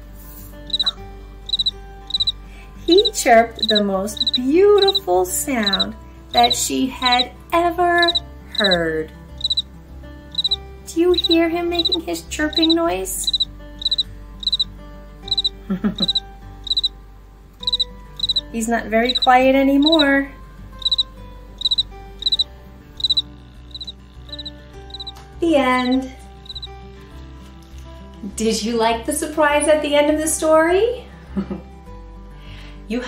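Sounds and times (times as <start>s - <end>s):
electronic cricket chirps: 0.7s - 7.3s, 8.0s - 8.8s, 9.4s - 9.7s, 10.4s - 10.6s, 11.2s - 14.7s, 15.3s - 16.9s, 17.6s - 18.5s, 19.1s - 20.1s, 20.8s - 25.1s, 25.8s - 26.7s.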